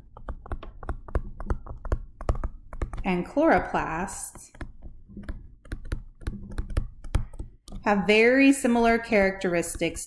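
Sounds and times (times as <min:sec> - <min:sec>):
stylus tapping on tablet screen: 0:00.0 - 0:08.0.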